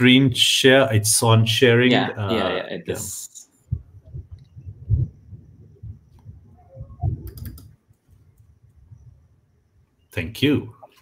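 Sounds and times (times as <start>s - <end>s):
keyboard and mouse clicks: 7.0s - 8.5s.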